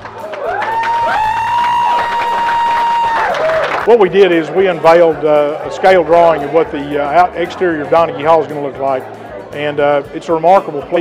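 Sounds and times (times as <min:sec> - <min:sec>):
person whooping: 0:00.2 - 0:03.7.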